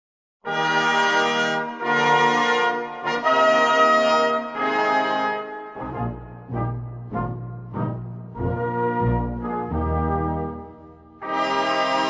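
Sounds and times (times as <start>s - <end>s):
brass long held chords: 0.4s - 12.0s.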